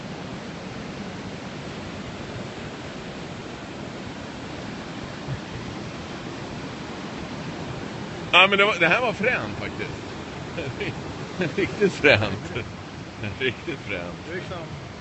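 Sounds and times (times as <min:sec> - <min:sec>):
fast-flowing river water: 0:00.0 - 0:15.0.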